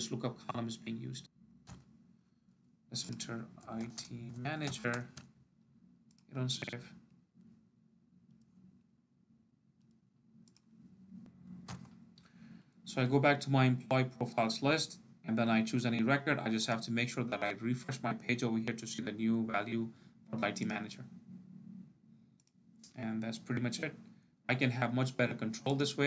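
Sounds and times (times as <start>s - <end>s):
faint low hum: 0.0s - 26.0s
computer mouse clicks: 1.6s - 1.9s, 6.1s - 6.3s, 9.8s - 10.7s, 22.4s - 23.0s.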